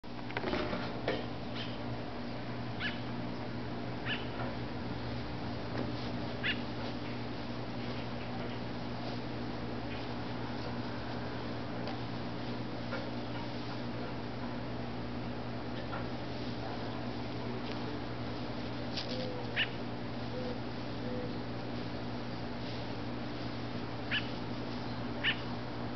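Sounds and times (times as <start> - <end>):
steady low hum: 0.0 - 25.9
short high animal calls: 2.8 - 3.1, 6.4 - 6.7, 19.1 - 21.4, 24.1 - 24.4, 25.2 - 25.5.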